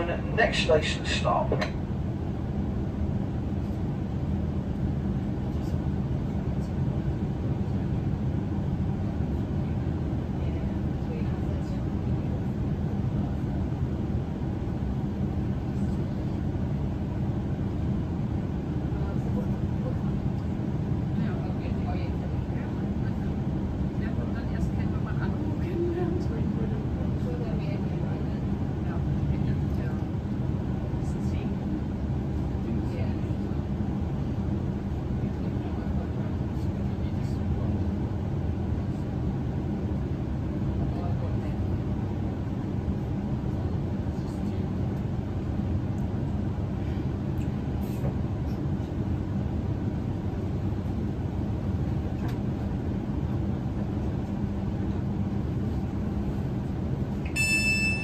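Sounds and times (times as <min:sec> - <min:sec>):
high beeping door chime: 0:57.3 - 0:58.0.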